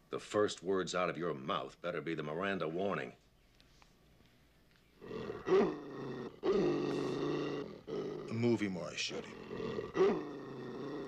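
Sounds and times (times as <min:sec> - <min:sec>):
dog growling and snarling: 0:05.0 - 0:08.6, 0:09.2 - 0:11.0.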